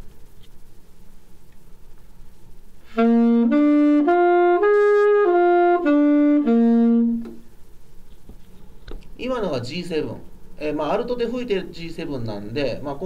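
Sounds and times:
alto saxophone arpeggio: 0:02.8 - 0:07.4.

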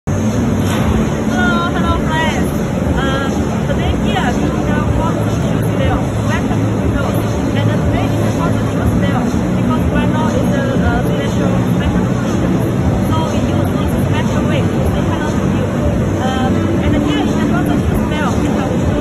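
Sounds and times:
low hum and rumble: 0:00.1 - 0:19.0.

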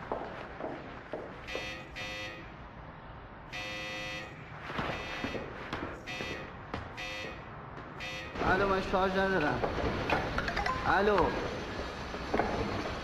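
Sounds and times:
electric intercom buzzer: 0:01.5 - 0:02.5, 0:03.5 - 0:05.4, 0:06.1 - 0:07.4, 0:08.0 - 0:08.6.

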